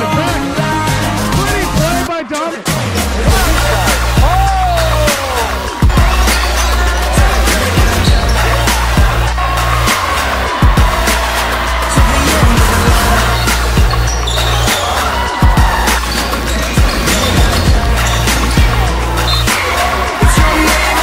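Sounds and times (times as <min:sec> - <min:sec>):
music with heavy bass and beat: 0:00.0 - 0:21.0.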